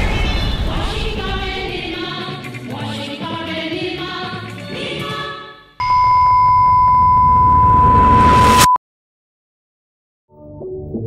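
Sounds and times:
high-pitched test tone beep: 0:05.8 - 0:08.8.

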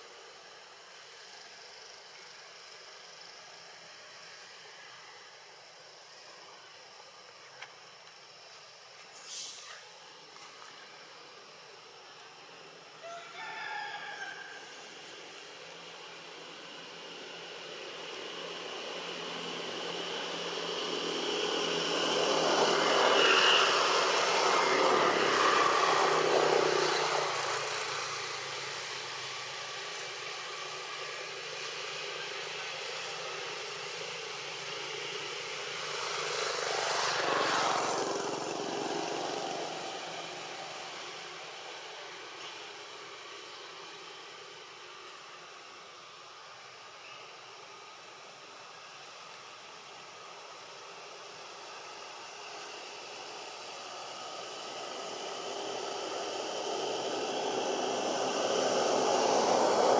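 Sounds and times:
engine passing by: 0:15.5 - 0:44.2, 0:50.2 - 0:59.9.

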